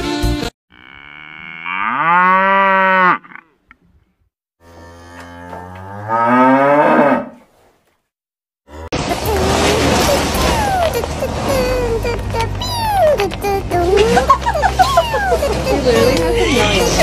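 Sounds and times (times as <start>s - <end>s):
cow mooing: 0.7s - 3.5s, 4.6s - 7.4s.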